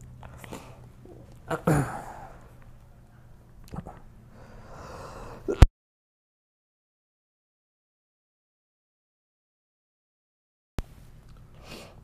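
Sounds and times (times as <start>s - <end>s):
low steady hum: 0.0s - 5.7s, 10.8s - 12.0s.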